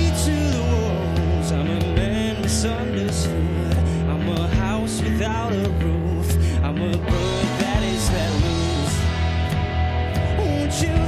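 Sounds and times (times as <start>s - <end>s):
man singing: 0.0s - 9.5s, 10.1s - 11.0s
acoustic guitar: 0.0s - 11.0s
sustained low notes: 0.0s - 11.0s.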